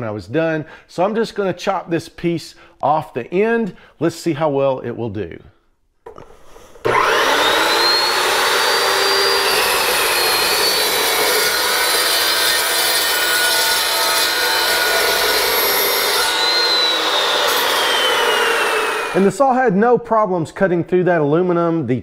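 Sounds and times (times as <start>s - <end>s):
chop saw cutting metal tube: 6.9s - 19.3s.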